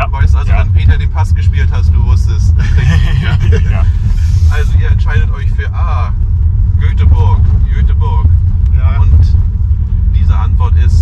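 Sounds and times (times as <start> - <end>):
voices: 0.0 - 6.2
car driving rumble inside cabin: 0.0 - 11.0
people laughing: 2.6 - 4.6.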